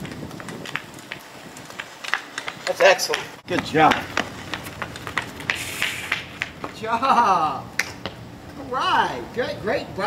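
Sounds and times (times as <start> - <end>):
quick footsteps on concrete: 0.0 - 7.0, 7.8 - 8.6
brief hiss: 5.6 - 6.2.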